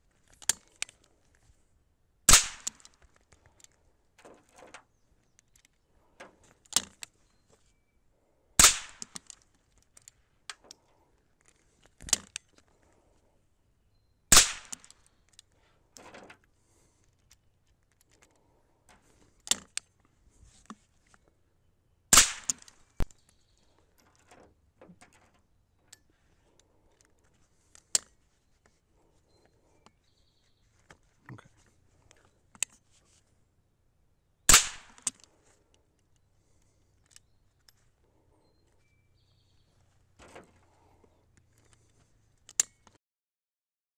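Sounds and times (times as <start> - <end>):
rifle shots: 2.3 - 2.9, 8.6 - 9.1, 14.3 - 14.9, 22.1 - 22.7, 34.5 - 35.1.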